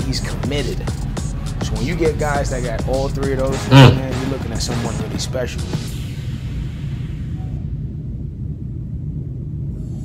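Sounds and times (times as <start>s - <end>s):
steady low rumble: 6.4s - 10.0s.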